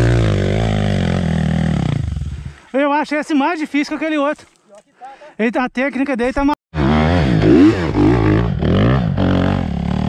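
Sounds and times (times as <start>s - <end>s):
dirt bike engine revving: 0.0s - 2.5s, 6.8s - 10.0s.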